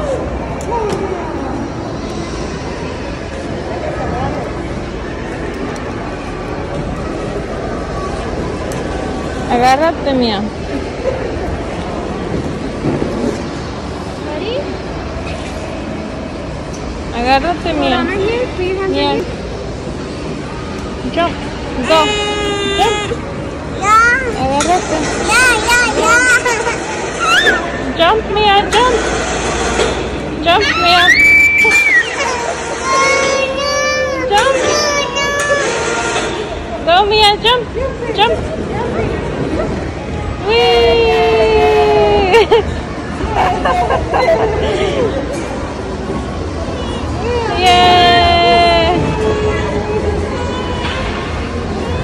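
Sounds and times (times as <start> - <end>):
background hubbub: 0.0 - 52.0
faint voices: 0.0 - 52.0
loud background din: 0.0 - 52.0.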